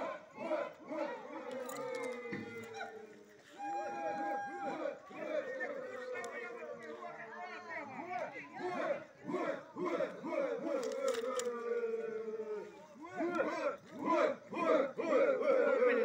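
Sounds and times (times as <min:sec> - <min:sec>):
men chanting a war cry: 0:00.0 - 0:16.0.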